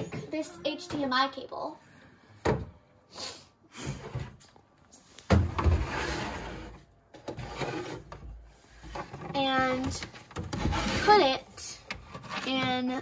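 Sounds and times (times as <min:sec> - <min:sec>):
player scraping across wood: 0:05.7 - 0:09.2.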